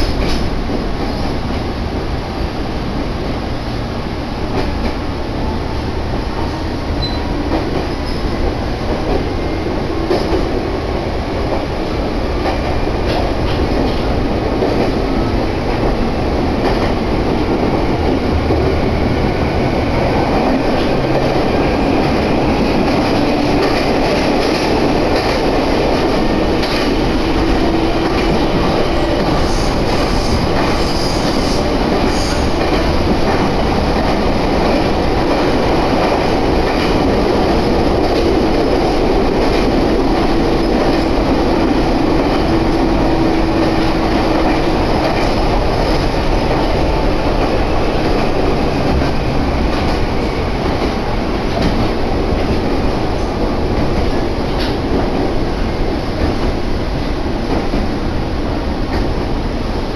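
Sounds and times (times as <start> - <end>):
train wheels rumbling on rails: 0.0 - 59.9.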